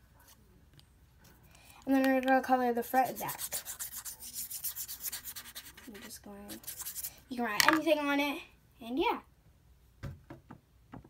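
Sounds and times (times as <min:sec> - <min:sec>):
marker rubbing on paper: 0:02.8 - 0:07.2.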